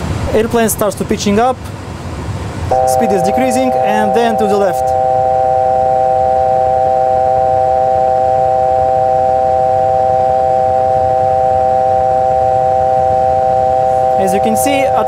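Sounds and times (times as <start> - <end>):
electronic alert chord: 2.7 - 10.7.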